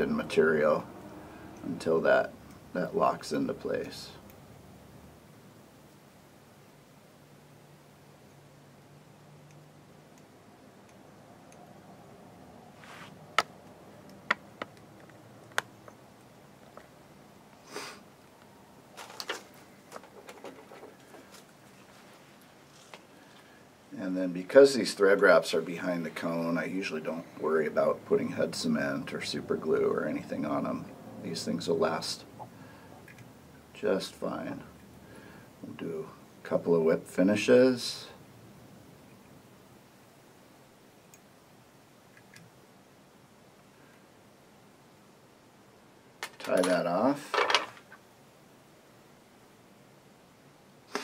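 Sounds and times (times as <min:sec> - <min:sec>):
thread rustling: 0:12.8 - 0:13.4, 0:18.9 - 0:23.7.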